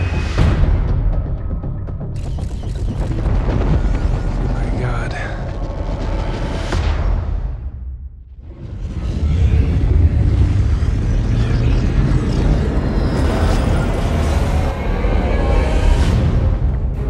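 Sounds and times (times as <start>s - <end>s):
trailer score deep rumble: 0.0s - 17.0s.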